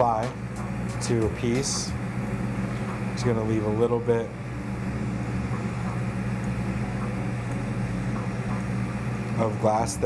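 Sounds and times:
low hum: 0.0 - 10.0.

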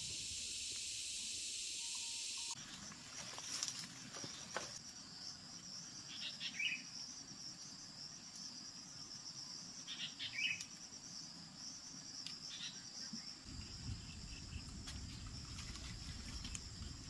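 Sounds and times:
insect chirps: 0.0 - 17.0
insects trilling: 0.0 - 17.0.

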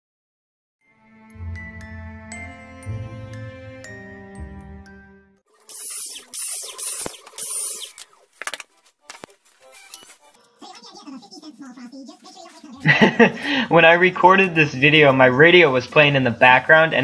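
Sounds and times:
background music: 0.8 - 17.0
cordless drill boring into wood: 5.7 - 8.0.

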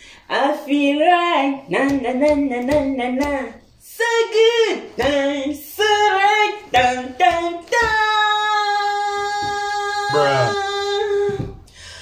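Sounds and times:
woman singing unaccompanied: 0.2 - 11.7
child singing: 4.2 - 11.6.

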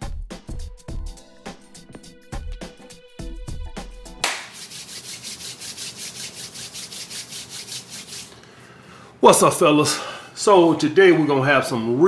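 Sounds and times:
background music with a beat: 0.0 - 5.0
rhythmic scratchy rubbing: 4.2 - 8.4.

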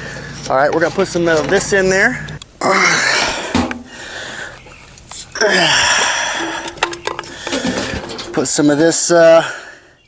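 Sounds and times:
low vocal grunt: 2.6 - 3.5, 5.4 - 6.4
plastic handling and rustling: 6.6 - 9.1.

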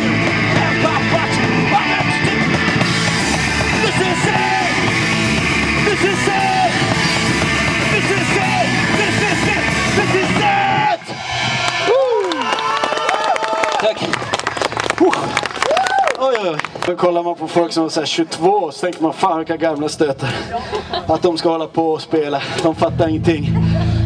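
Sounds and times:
distorted electric guitar: 0.0 - 12.5, 22.7 - 24.0
bass guitar: 0.0 - 12.8, 22.4 - 24.0
drums: 0.0 - 16.0
people shouting: 3.5 - 5.0, 5.7 - 13.9
shouted vocals: 3.6 - 5.0, 5.8 - 7.0, 7.8 - 13.8.

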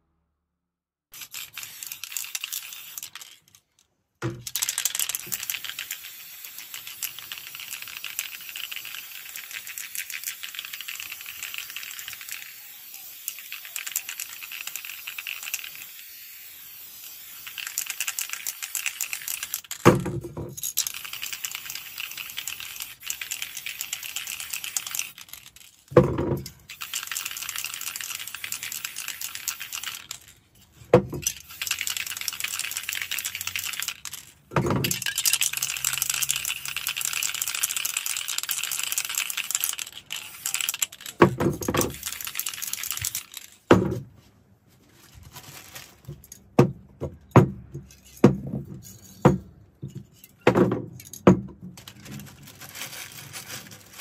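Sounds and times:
spray paint cans hissing: 1.2 - 3.6, 4.4 - 20.0, 20.6 - 26.0, 26.6 - 43.7.

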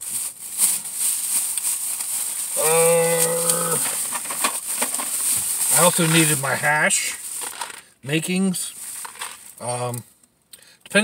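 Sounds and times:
plastic bag rustling: 0.0 - 9.7.

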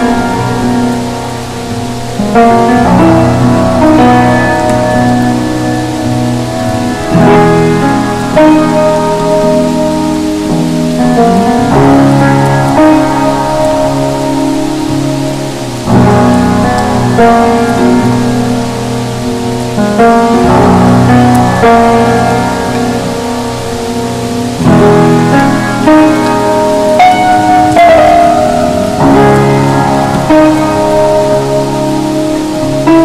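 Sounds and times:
rain hiss: 0.0 - 33.0
slow jazz chords: 0.0 - 33.0.

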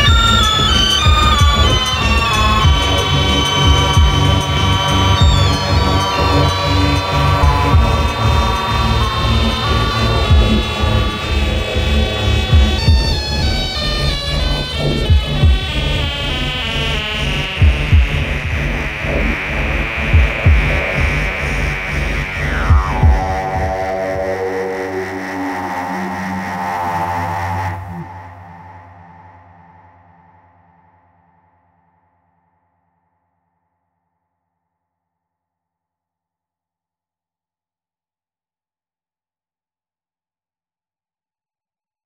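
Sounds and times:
sequenced high synth notes: 0.0 - 29.3
low pulsing synth bass: 0.0 - 29.4.

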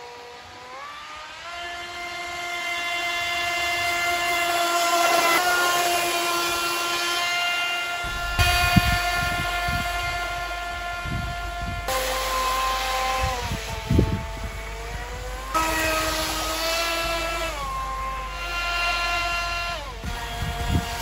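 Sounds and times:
model jetboat motor whine: 0.0 - 21.0
low thumps: 8.0 - 11.9.

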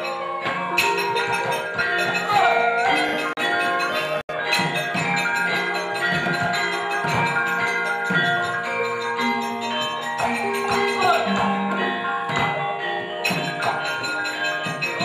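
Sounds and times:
gamelan metallophones and gongs: 0.0 - 15.0.

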